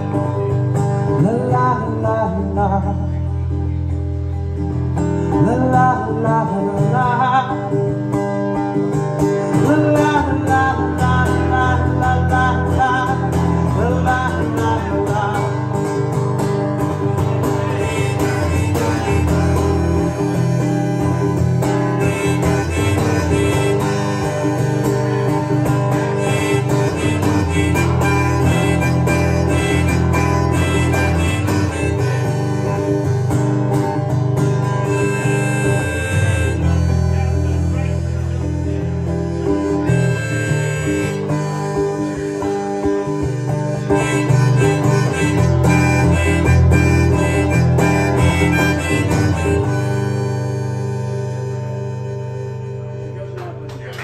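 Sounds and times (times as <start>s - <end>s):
acoustic guitar strumming: 0.0s - 53.9s
harmonica melody: 3.0s - 53.2s
person singing: 9.5s - 15.9s.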